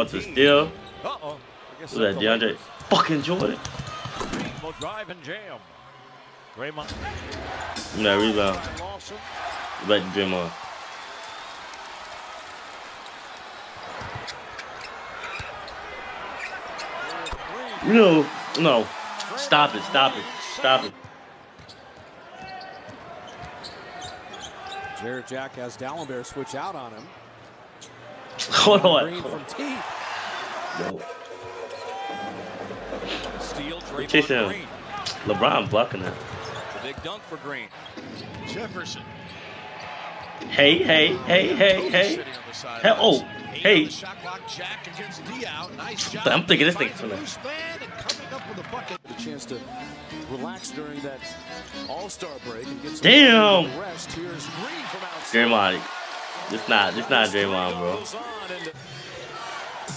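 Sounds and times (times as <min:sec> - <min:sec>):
play-by-play commentary: 0:00.0 - 0:03.6, 0:06.6 - 0:09.2, 0:09.8 - 0:10.6, 0:16.9 - 0:20.9, 0:33.0 - 0:39.2, 0:40.4 - 0:58.8
arena crowd noise: 0:00.0 - 0:59.9
basketball bouncing on court: 0:13.8 - 0:14.4
crowd murmur: 0:31.0 - 0:35.3.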